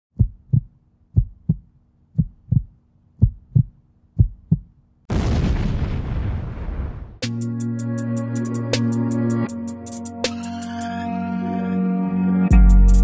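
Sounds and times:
heartbeat double thumps: 0:00.1 - 0:04.8.

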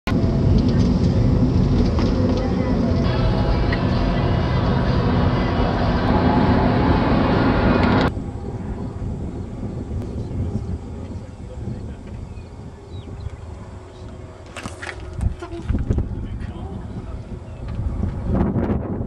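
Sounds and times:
car road and engine noise: 0:00.1 - 0:19.0.

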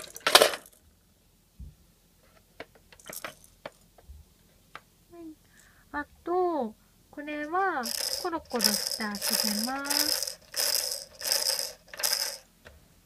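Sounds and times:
shaker-like rattling beats: 0:07.8 - 0:12.4.

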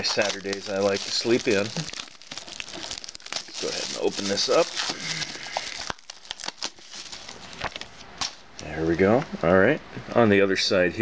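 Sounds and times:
plastic wrap crinkling: 0:00.0 - 0:08.4.

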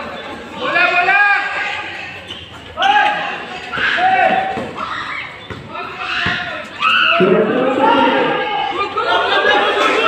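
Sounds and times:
players and spectators shouting: 0:00.0 - 0:10.0
basketball bounce on concrete: 0:05.4 - 0:06.5.

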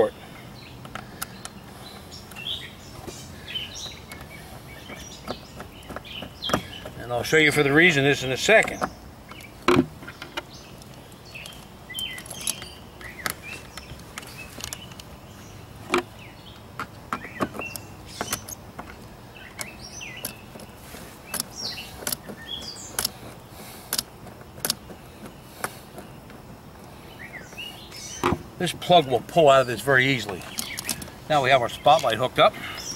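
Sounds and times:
birds chirping: 0:00.0 - 0:32.9.

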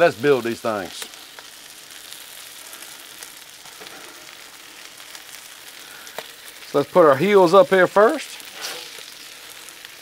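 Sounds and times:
burger patties sizzling on griddle: 0:00.0 - 0:10.0.

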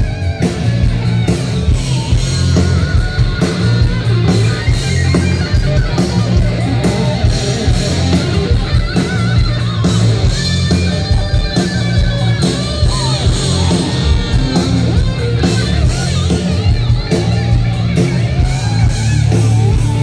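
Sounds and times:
distorted electric guitar: 0:00.0 - 0:20.0
drum kit: 0:00.0 - 0:20.0
heavy bass: 0:00.0 - 0:20.0.

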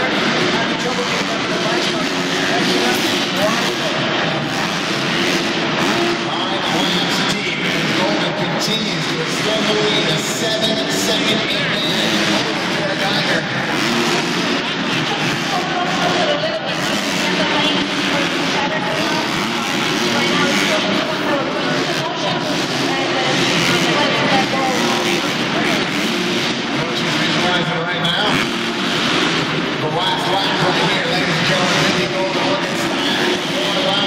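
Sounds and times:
dirt bike engines revving: 0:00.0 - 0:34.0
loud public address voice: 0:00.0 - 0:34.0.

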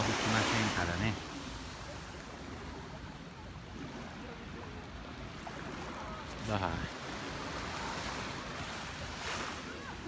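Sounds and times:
small waves washing on sand: 0:00.0 - 0:10.0.

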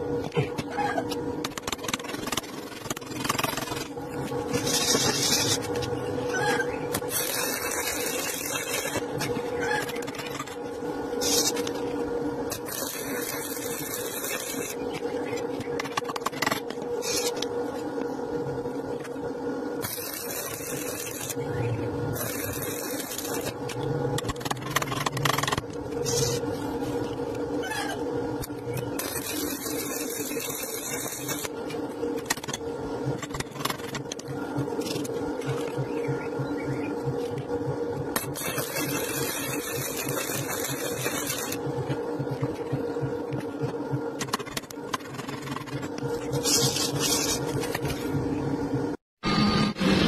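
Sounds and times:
low hum: 0:00.0 - 0:50.0
welding arc crackling and hissing: 0:01.4 - 0:17.8, 0:19.8 - 0:35.6, 0:38.0 - 0:48.1.

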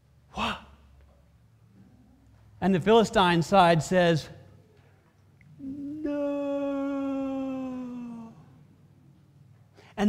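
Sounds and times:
man's long falling wordless cry: 0:05.6 - 0:08.6.

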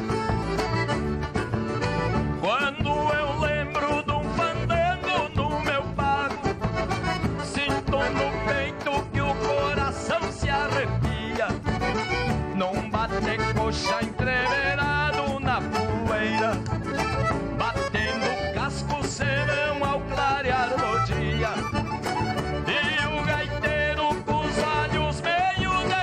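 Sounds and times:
accordions: 0:00.0 - 0:26.0
acoustic guitars: 0:00.0 - 0:26.0.

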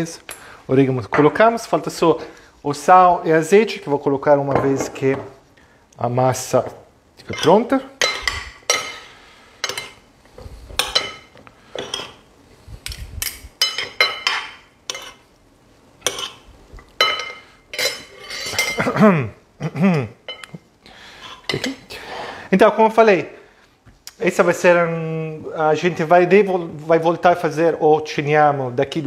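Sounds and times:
metal spoons clinking against bowl: 0:07.2 - 0:09.0, 0:09.6 - 0:10.0, 0:10.8 - 0:12.2, 0:13.6 - 0:15.2, 0:16.0 - 0:16.4, 0:17.0 - 0:19.0, 0:20.3 - 0:20.5.

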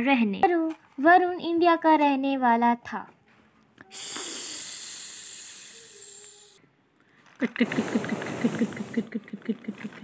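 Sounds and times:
high hiss: 0:03.8 - 0:06.6, 0:07.6 - 0:09.1.

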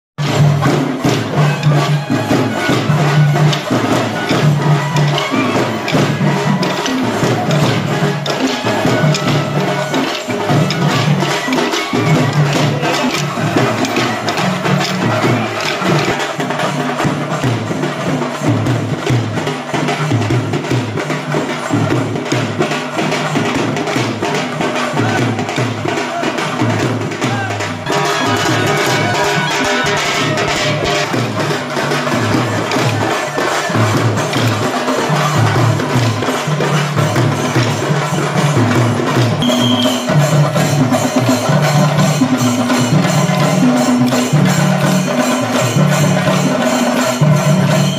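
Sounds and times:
loud music with drumming: 0:00.2 - 0:47.9.

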